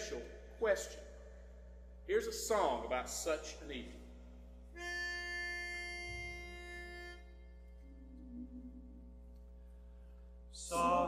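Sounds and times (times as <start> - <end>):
pitch pipe note: 3.8 - 9.4, 10.7 - 11.0.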